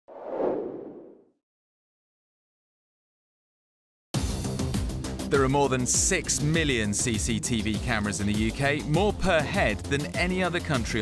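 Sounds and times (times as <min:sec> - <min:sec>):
whoosh sound effect: 0:00.1 - 0:01.2.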